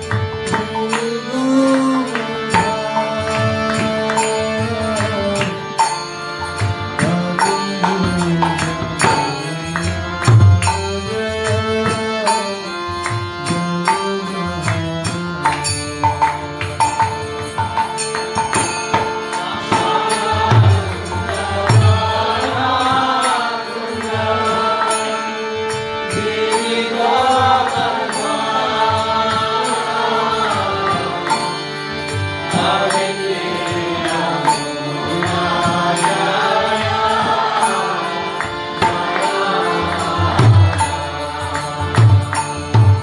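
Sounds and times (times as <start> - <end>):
man singing a devotional chant: 0.0 - 16.2, 19.0 - 43.0
harmonium chords: 0.0 - 43.0
hand drum beating: 6.6 - 10.9, 38.8 - 43.0.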